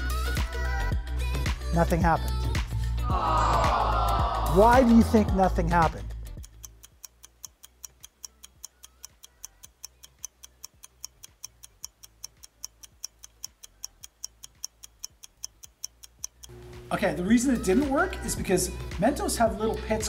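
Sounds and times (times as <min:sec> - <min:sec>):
clock ticking: 0:04.4 - 0:20.0.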